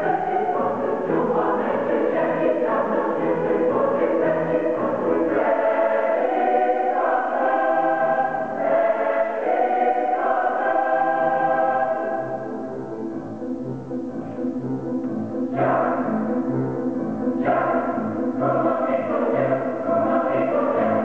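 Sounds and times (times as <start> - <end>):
choir singing chords: 0.0 - 21.0.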